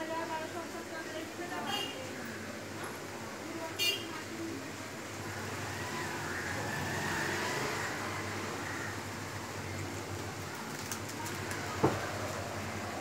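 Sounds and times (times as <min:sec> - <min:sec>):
road traffic noise: 0:00.0 - 0:13.0.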